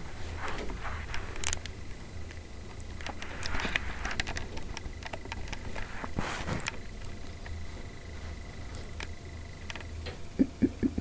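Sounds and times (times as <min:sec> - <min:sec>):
towel rustling and scratching: 0:00.0 - 0:01.4, 0:05.5 - 0:06.8
steady low hum: 0:00.0 - 0:11.0.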